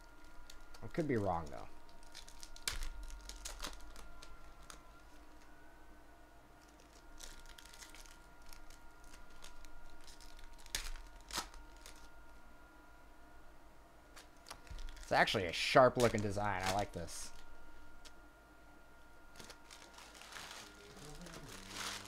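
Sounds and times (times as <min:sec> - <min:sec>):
foil wrapper crinkling and tearing: 0:00.0 - 0:01.1, 0:01.8 - 0:04.9, 0:06.6 - 0:12.1, 0:14.2 - 0:17.5, 0:19.3 - 0:22.0.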